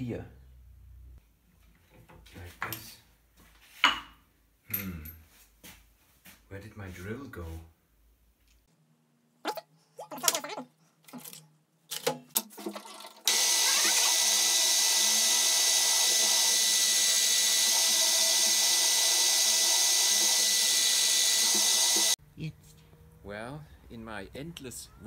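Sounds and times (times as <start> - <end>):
drill press drilling into metal: 13.3 - 22.2.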